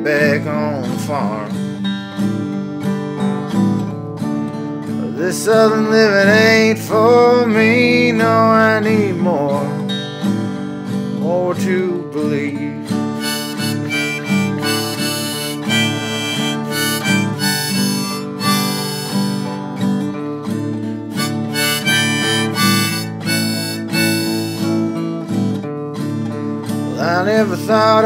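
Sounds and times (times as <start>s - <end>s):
strummed acoustic guitar: 0.0s - 28.0s
harmonica playing held notes: 13.2s - 20.0s, 21.1s - 25.2s.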